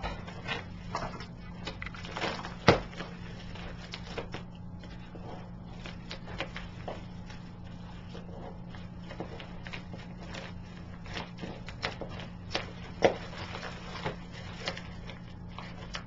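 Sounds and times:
steady low hum: 0.0s - 16.0s
padded mailer rustling: 0.4s - 16.0s.

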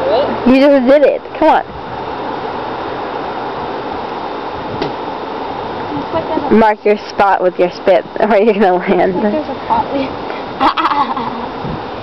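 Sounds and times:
river water rushing: 0.0s - 12.0s.

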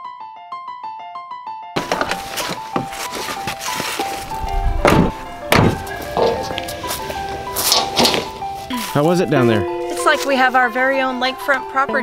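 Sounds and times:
background piano music: 0.0s - 12.0s
camping gear thunking: 1.8s - 10.4s.

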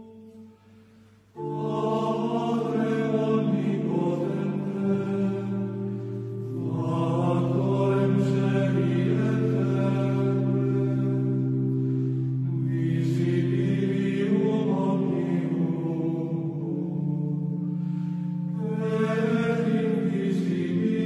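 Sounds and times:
long-held low notes: 0.0s - 21.0s
voices chanting a melody: 1.4s - 21.0s.

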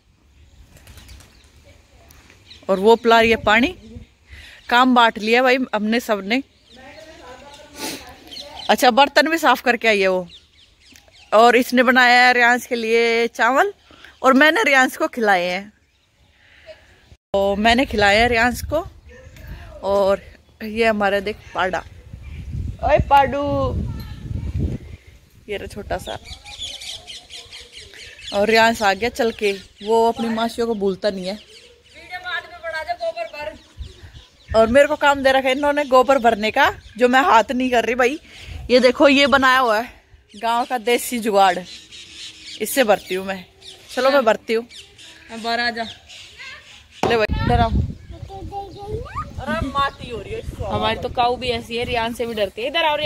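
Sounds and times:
small birds chirping: 0.0s - 53.0s
wind rumble on microphone: 17.4s - 20.3s, 21.3s - 26.7s, 47.1s - 53.0s.

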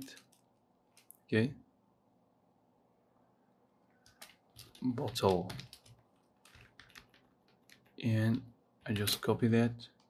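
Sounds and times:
faint keyboard keystrokes: 4.0s - 8.0s.

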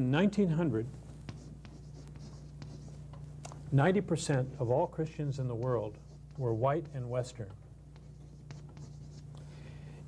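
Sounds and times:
steady low hum: 0.0s - 10.0s
chalk tapping and scratching: 0.9s - 3.6s, 4.2s - 9.3s.

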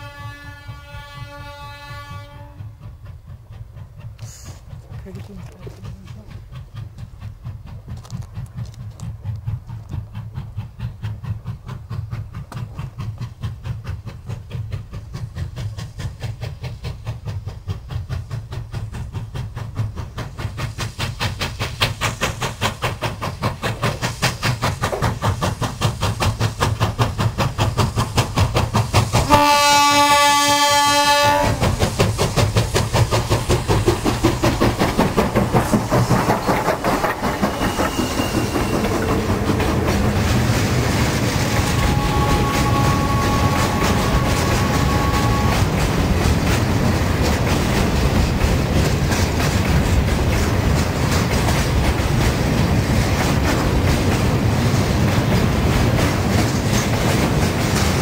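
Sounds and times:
steam whistle blast: 0.0s - 2.6s, 29.3s - 31.6s, 41.6s - 45.7s
steam locomotive exhaust beats: 0.0s - 58.0s
freight wagons clattering: 31.5s - 52.6s.

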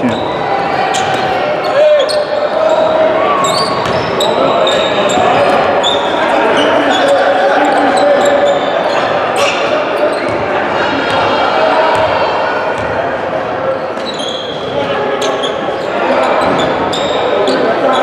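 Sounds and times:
sneakers squeaking on floor: 0.0s - 11.3s, 13.8s - 18.0s
echoing indistinct voices: 0.0s - 18.0s.

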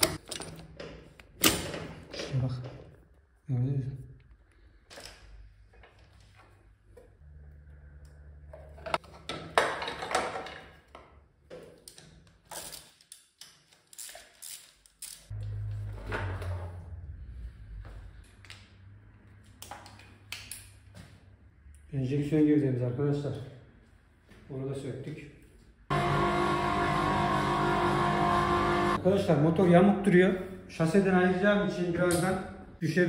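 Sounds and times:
low hum: 7.0s - 9.0s.

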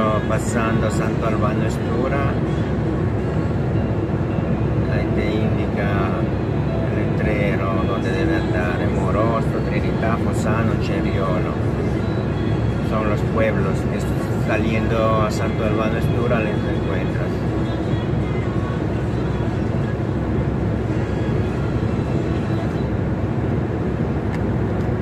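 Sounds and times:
lorry engine and tyres droning: 0.0s - 25.0s.

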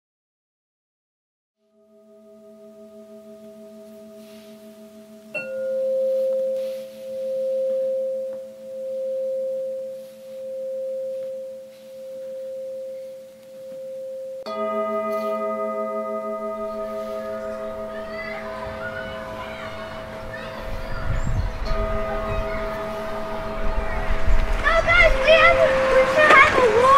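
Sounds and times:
pulsing ringing tone: 1.6s - 26.9s
bell-like ringing tones: 1.7s - 26.9s.

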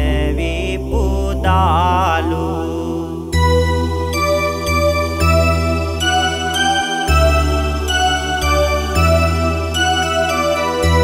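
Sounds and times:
person chanting melodically: 0.0s - 3.4s
keyboard melody: 0.0s - 11.0s
sustained keyboard bass: 0.0s - 11.0s.

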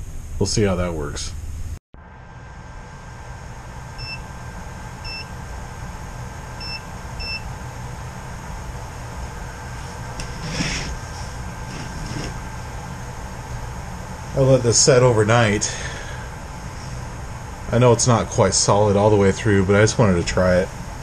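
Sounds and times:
background hum: 0.0s - 21.0s
multimeter electronic beeps: 4.0s - 4.3s, 5.0s - 5.4s, 6.6s - 7.6s.

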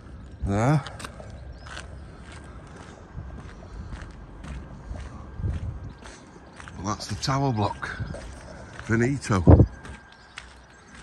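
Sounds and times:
soft footsteps on walkway: 0.0s - 11.0s.

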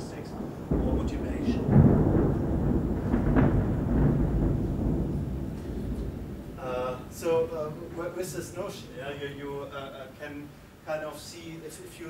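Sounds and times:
low rumbling noise: 0.0s - 10.8s.

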